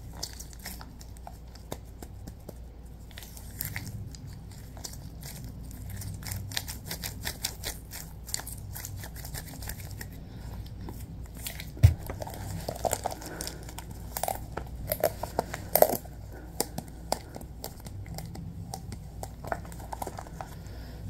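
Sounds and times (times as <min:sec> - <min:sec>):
plastic cup crinkling: 0:10.8 - 0:20.8.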